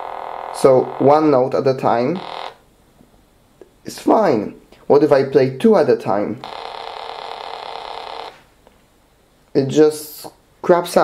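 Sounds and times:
distorted synthesizer buzz: 0.0s - 2.7s, 6.4s - 8.5s.

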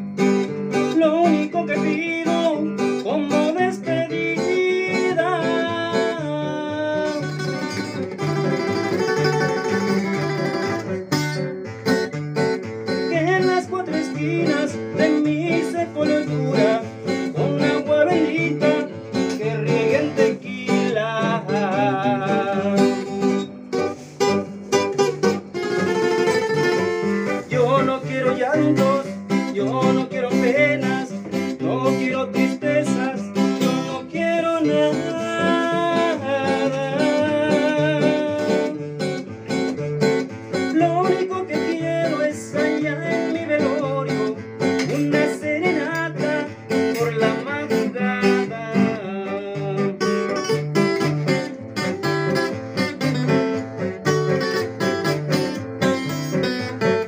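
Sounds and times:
acoustic guitars strumming: 0.0s - 57.0s
men singing with vibrato: 0.8s - 7.2s, 13.0s - 23.2s, 26.8s - 38.9s, 40.7s - 50.0s.

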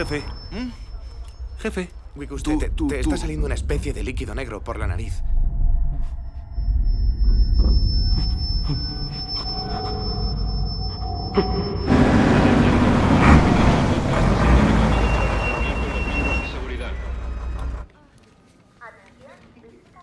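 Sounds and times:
high ringing tone: 0.0s - 2.9s, 6.2s - 14.1s
heavy truck driving: 11.0s - 17.9s.

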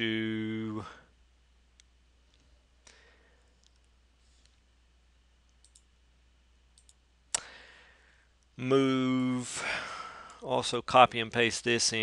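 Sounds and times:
steady low hum: 0.0s - 12.0s
faint computer clicks: 5.5s - 5.9s, 6.7s - 7.5s.

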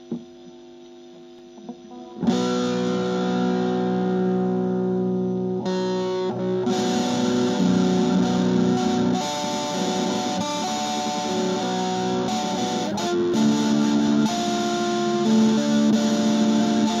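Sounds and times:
soft picked guitar notes: 1.5s - 17.0s
loud electric guitar chord: 1.6s - 17.0s.

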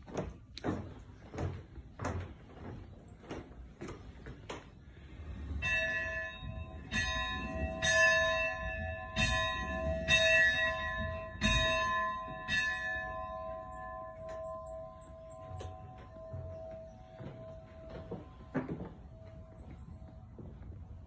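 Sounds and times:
bell ringing: 5.3s - 19.9s.

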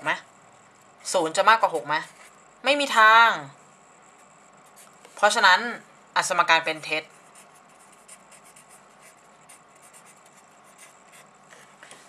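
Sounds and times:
scratching of handwriting: 7.0s - 11.6s.

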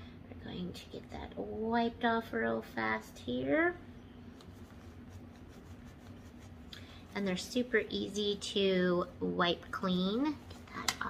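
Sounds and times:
low steady hum: 0.0s - 11.0s
rubbing and light scratching: 4.2s - 8.3s.

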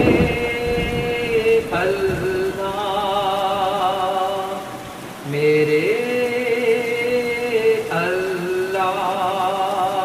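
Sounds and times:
rumbling rain-like noise: 0.0s - 10.0s.

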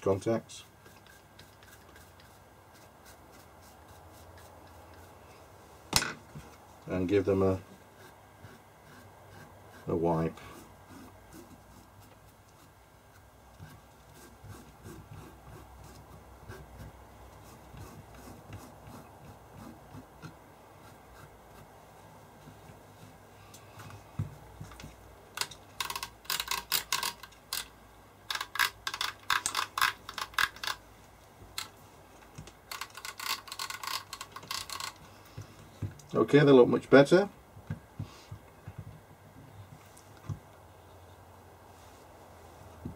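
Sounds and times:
tissue rubbing contacts: 31.6s - 35.8s, 41.6s - 42.9s.

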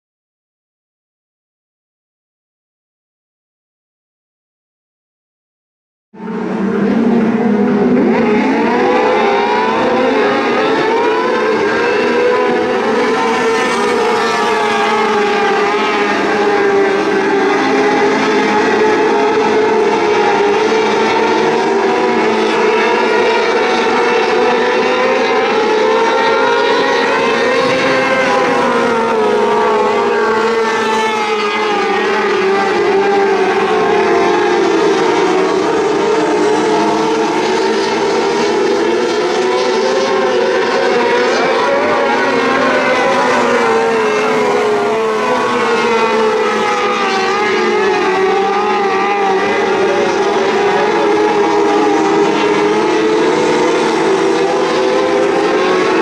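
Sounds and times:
race car engines at high revs: 6.2s - 56.0s.

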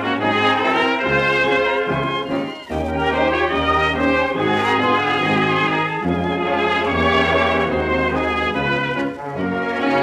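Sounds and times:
dance orchestra playing fox trot: 0.0s - 10.0s.

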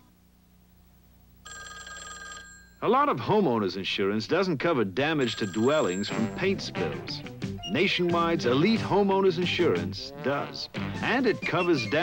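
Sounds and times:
telephone bell ringing: 1.4s - 2.9s, 5.2s - 6.3s.

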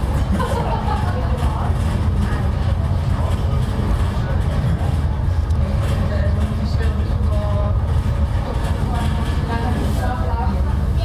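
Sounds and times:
cable car cabin rumble: 0.0s - 11.0s
indistinct passenger voices: 0.0s - 11.0s.

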